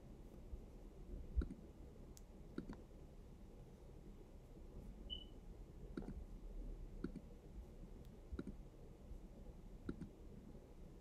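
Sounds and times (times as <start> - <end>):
faint low room hum: 0.0 - 11.0
computer mouse clicks: 1.4 - 1.6, 2.2 - 2.8, 5.9 - 6.2, 7.0 - 7.3, 8.0 - 8.6, 9.8 - 10.2.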